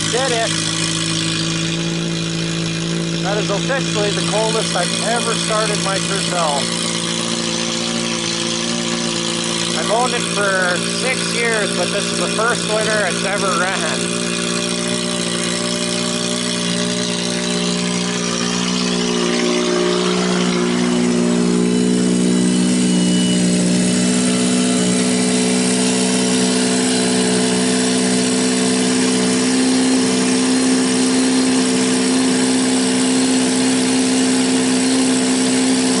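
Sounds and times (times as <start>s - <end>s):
car engine idling: 0.0s - 36.0s.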